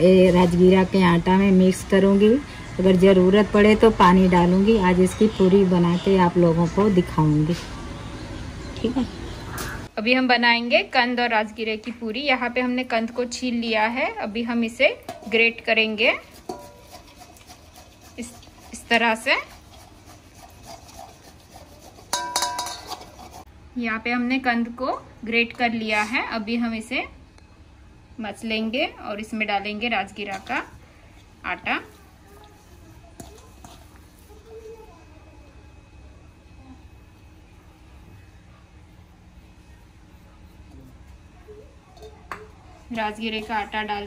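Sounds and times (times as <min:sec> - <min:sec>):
grater clinking against steel bowl: 0:15.0 - 0:23.5, 0:33.2 - 0:34.4
soft squishing and rubbing: 0:15.1 - 0:23.5, 0:30.0 - 0:44.0
grating on a box grater: 0:16.2 - 0:22.2, 0:22.8 - 0:23.5.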